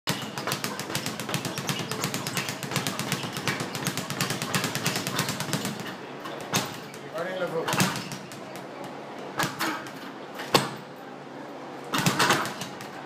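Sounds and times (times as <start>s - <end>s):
speed bag rattling: 0.1s - 5.9s.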